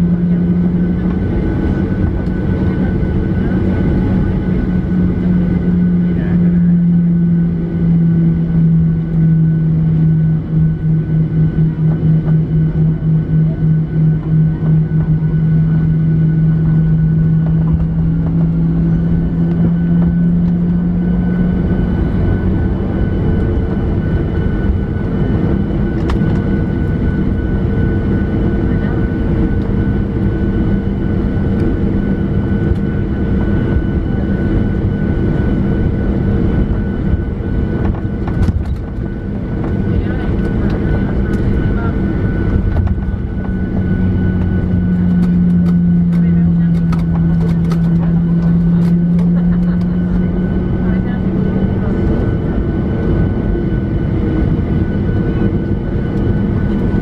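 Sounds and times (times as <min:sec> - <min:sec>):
jet engines rumbling in cabin: 0:00.0 - 0:57.0.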